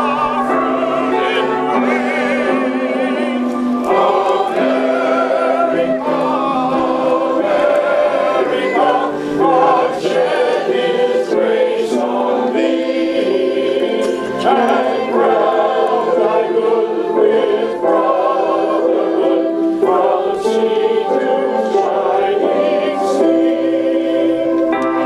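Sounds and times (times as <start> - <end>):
congregation singing a hymn: 0.0 - 25.0.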